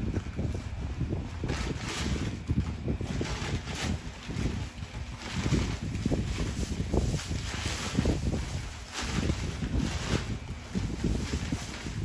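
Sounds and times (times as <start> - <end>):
paper crumpling: 1.4 - 12.0.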